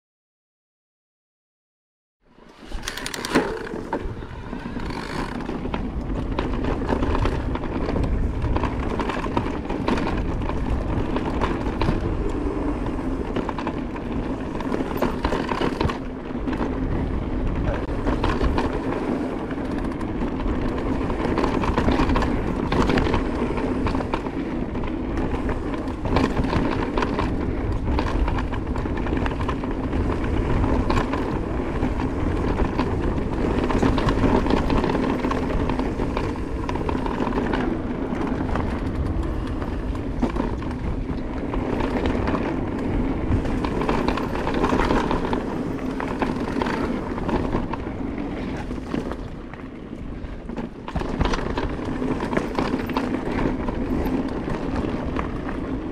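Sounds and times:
wind: 2.2s - 55.9s
bike rattling over bumps: 2.3s - 55.9s.

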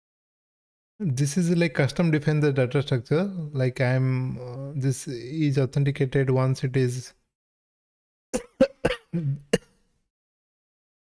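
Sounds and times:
man coughing: 8.4s - 9.7s.

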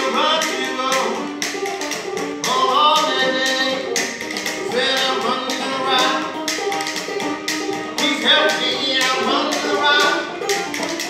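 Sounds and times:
banjo picking: 0.0s - 11.0s.

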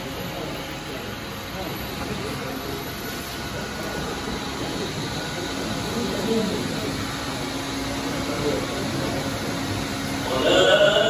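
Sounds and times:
fans humming: 0.0s - 11.0s
low murmuring voices: 0.0s - 11.0s.

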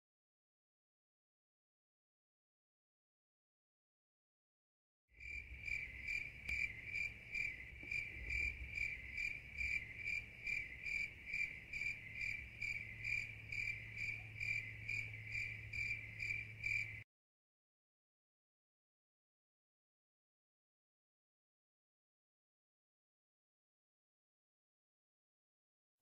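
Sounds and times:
cricket chirping: 5.2s - 17.0s.

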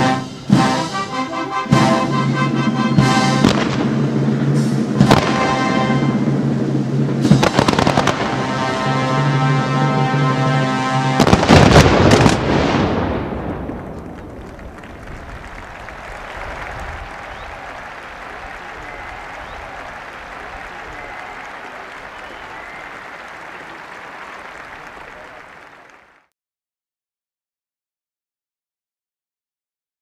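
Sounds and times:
fireworks bangs: 1.7s - 25.8s
crowd applauding and cheering: 13.6s - 26.3s.

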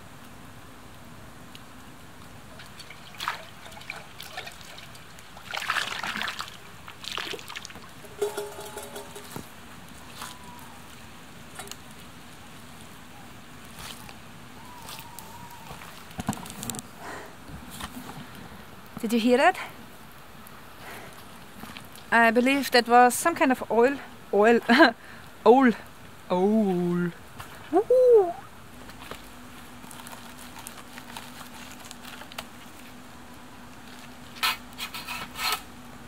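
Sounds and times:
owl calling: 9.9s - 11.0s, 14.0s - 15.8s.

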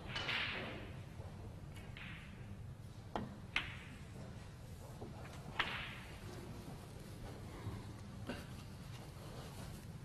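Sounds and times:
snooker balls clacking: 0.0s - 6.6s.

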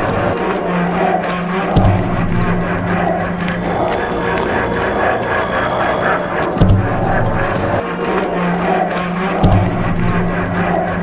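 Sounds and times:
low held notes: 0.0s - 11.0s
pulsing mid-range pattern: 0.0s - 11.0s
heavy drum hit: 1.8s - 7.7s.

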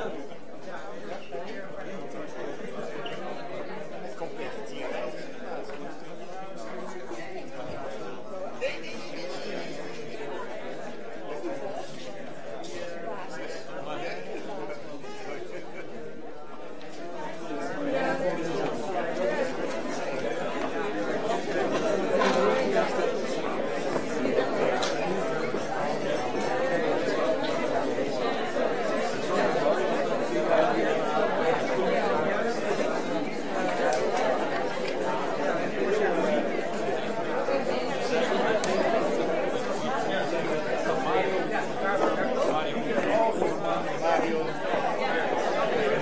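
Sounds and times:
audience chatter: 0.0s - 46.0s.

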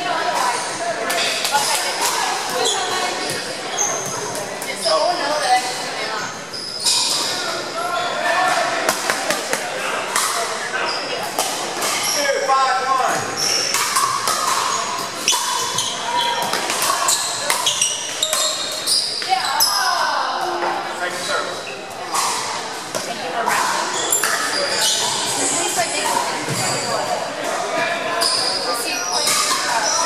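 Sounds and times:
chatter of players' voices: 0.0s - 30.0s
paddles striking plastic balls: 13.7s - 15.8s.

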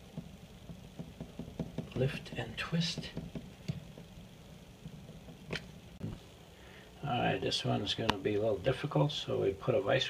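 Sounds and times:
soft knock: 0.1s - 2.0s, 3.0s - 4.1s.

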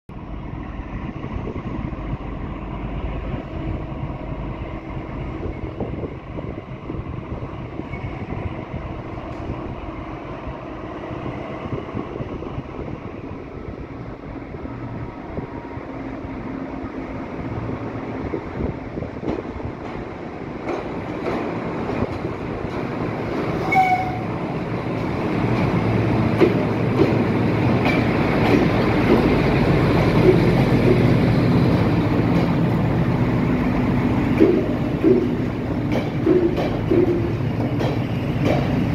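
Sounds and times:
diesel locomotive engine running: 0.1s - 38.9s.

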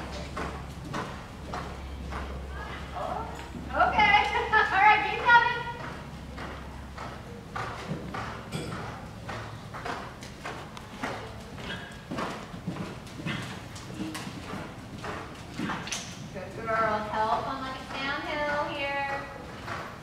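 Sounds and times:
horse hoofbeats on dirt: 0.0s - 20.0s.

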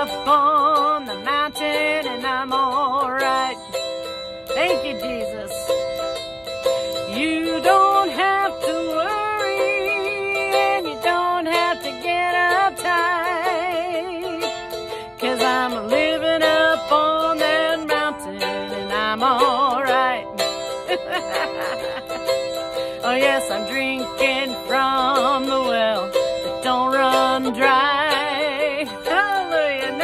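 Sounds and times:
acoustic guitar strumming: 0.0s - 30.0s
woman singing with vibrato: 0.0s - 30.0s.

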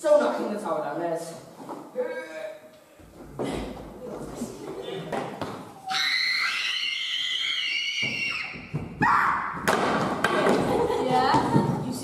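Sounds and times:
shrill wavering scream: 5.8s - 9.6s.

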